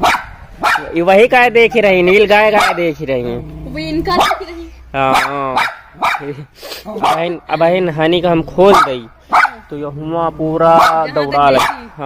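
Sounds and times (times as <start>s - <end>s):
dog barking: 0.0s - 1.0s, 2.5s - 2.9s, 4.1s - 6.4s, 7.0s - 7.4s, 8.7s - 9.7s, 10.7s - 12.0s.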